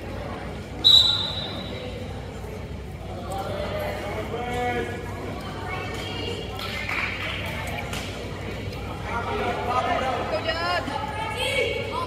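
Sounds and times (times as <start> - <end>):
murmur of spectators' voices: 0.0 - 12.0
referee's whistle blast: 0.8 - 1.8.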